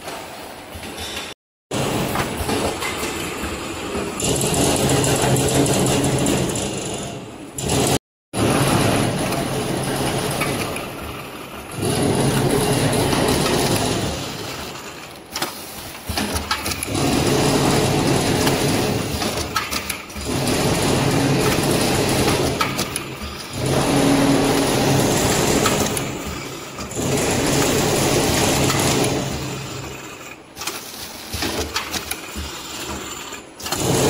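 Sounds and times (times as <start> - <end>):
packing machine running: 1.7 - 34.0.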